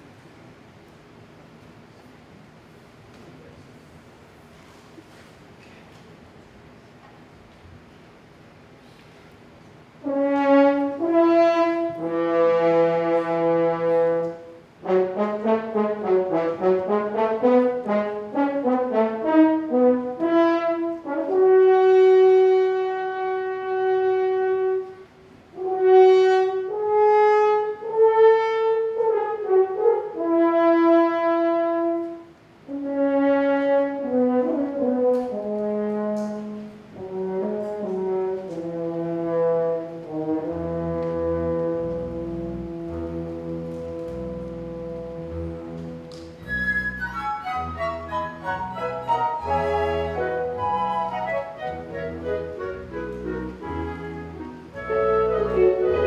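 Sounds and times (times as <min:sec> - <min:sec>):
french horns playing melody: 0:10.0 - 0:56.0.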